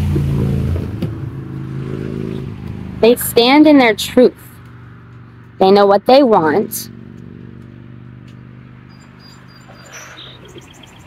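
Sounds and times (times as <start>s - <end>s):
birds chirping: 6.4s - 11.0s.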